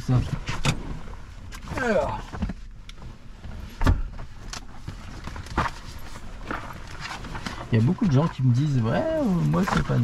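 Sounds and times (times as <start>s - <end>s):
papers being handled: 9.2s - 10.0s.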